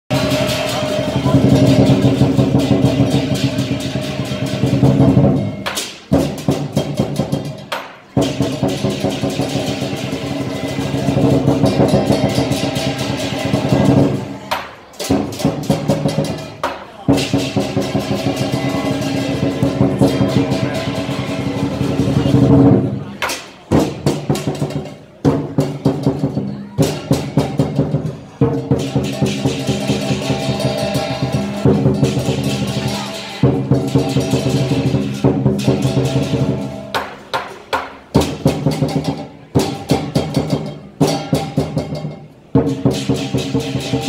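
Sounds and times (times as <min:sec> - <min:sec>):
large drum beaten fast: 0:00.0 - 0:44.0
cymbal crashes: 0:00.1 - 0:14.3, 0:17.1 - 0:23.1, 0:28.6 - 0:37.0.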